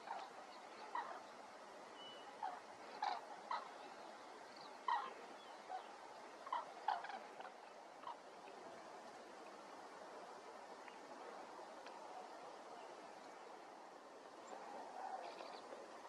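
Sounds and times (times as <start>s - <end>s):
cranes trumpeting calls: 0.0s - 1.4s, 2.0s - 4.0s, 4.8s - 8.5s, 14.8s - 15.7s.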